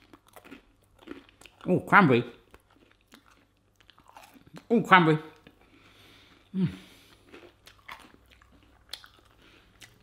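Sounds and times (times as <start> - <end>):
person chewing bread: 0.0 - 10.0.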